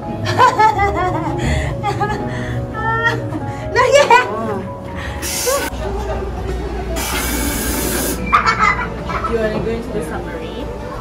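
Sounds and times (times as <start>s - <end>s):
rushing hiss of air: 5.2s - 5.7s, 7.0s - 8.2s.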